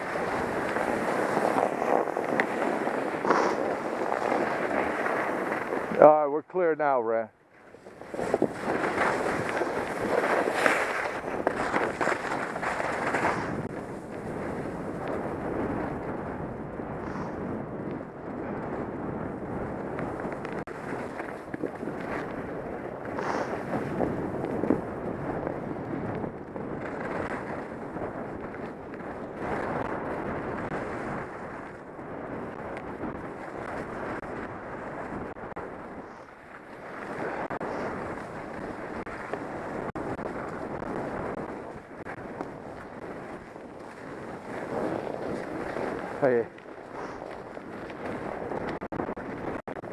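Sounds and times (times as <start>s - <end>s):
skis sliding over packed snow: 0.0s - 16.4s, 17.0s - 49.9s
wind rushing over microphone: 0.0s - 49.9s.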